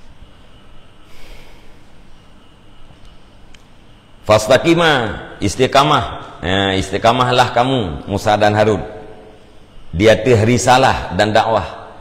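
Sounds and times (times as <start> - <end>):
low steady hum: 0.0 - 12.0
man breathing in through nose: 1.0 - 2.0.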